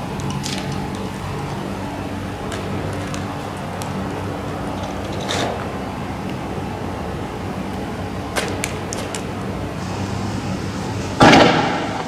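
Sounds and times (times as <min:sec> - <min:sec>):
steady low hum: 0:00.0 - 0:12.0
sharp cracks: 0:08.3 - 0:09.3, 0:11.2 - 0:12.0.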